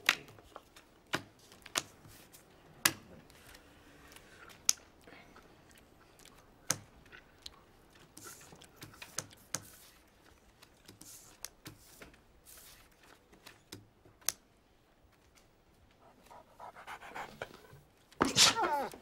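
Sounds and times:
soft handling of cards: 0.0s - 16.3s.

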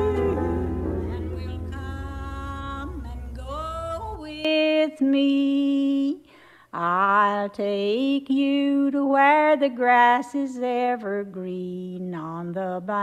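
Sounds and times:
low drone: 0.0s - 4.4s
person singing slow melody: 0.0s - 5.6s.

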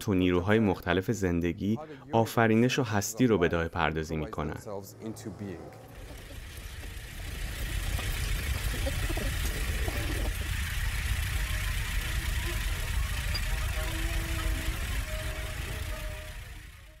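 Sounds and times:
deep electronic rumble: 3.8s - 17.0s.

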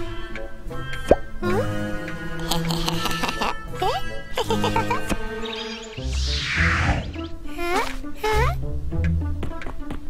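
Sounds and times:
cartoon background music: 0.0s - 10.0s
upward-gliding bloop effect: 5.1s - 7.4s.

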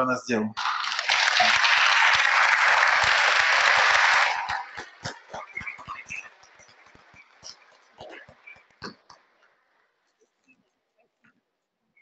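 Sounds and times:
applause: 0.6s - 7.6s.

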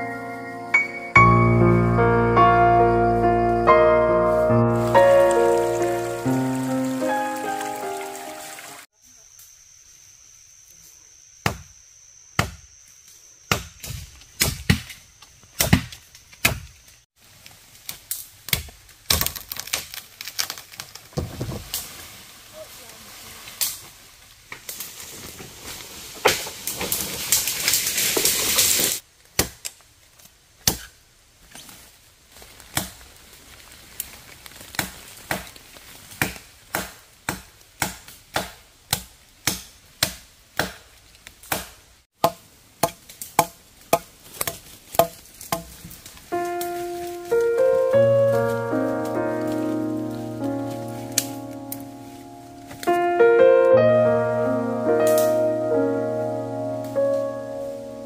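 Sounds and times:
rustling and crashing through branches: 4.2s - 8.9s, 13.8s - 53.8s, 54.5s - 58.0s
machete chopping wood: 11.4s - 11.7s, 12.4s - 12.6s, 13.5s - 15.0s, 15.6s - 16.7s, 18.5s - 20.0s, 29.4s - 29.8s, 30.6s - 31.0s, 36.2s - 46.0s.

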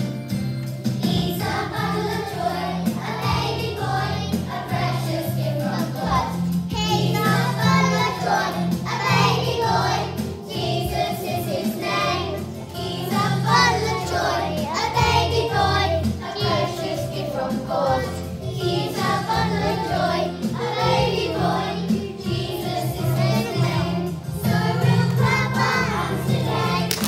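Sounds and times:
instrumental backing music: 0.0s - 27.0s
young children singing: 1.0s - 27.0s.

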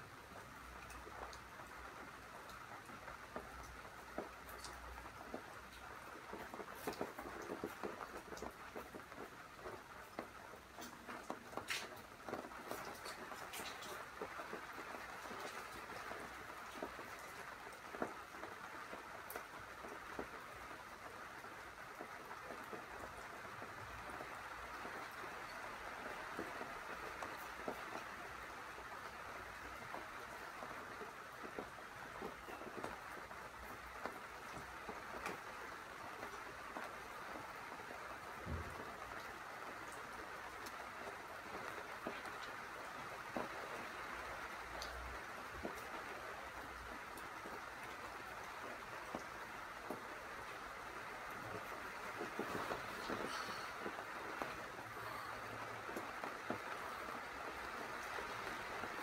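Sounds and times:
rain hissing: 0.0s - 59.0s
raindrops ticking: 0.0s - 59.0s.

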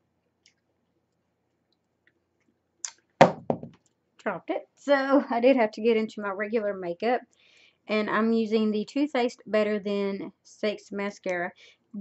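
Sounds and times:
woman speaking: 4.2s - 7.3s, 7.9s - 12.0s.

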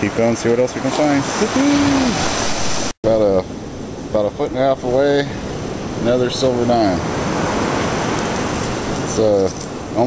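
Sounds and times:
ocean surf breaking: 0.0s - 3.0s, 3.6s - 10.0s.

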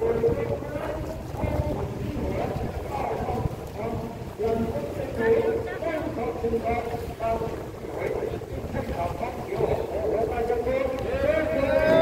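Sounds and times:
wind buffeting microphone: 0.0s - 12.0s
man chanting: 9.3s - 12.0s.

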